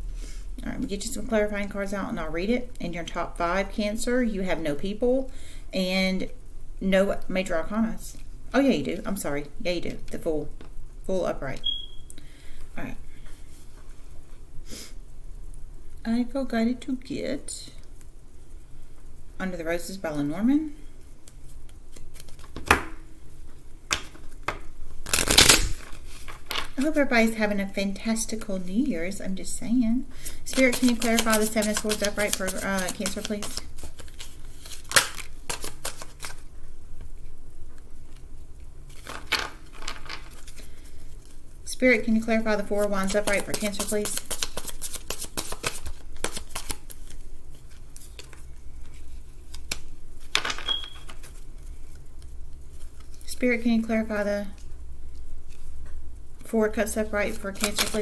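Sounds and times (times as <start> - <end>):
cards being shuffled: 21.2 - 23.0, 23.9 - 27.0, 30.2 - 36.5, 38.9 - 41.4, 42.6 - 53.3, 57.3 - 58.0.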